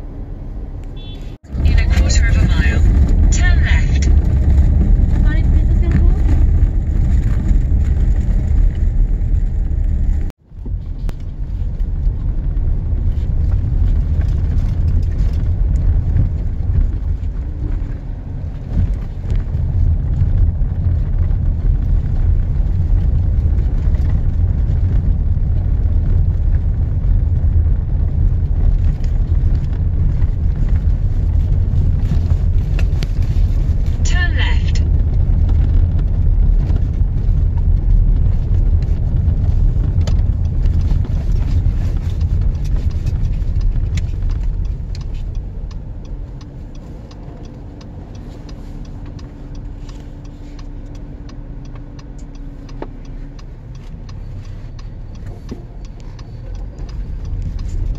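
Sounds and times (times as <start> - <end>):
car driving rumble: 0.0 - 57.9.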